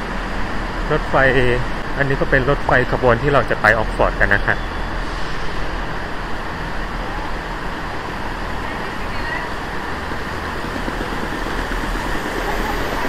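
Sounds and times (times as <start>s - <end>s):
diesel train engines idling: 0.0s - 13.0s
station platform noise: 0.0s - 13.0s.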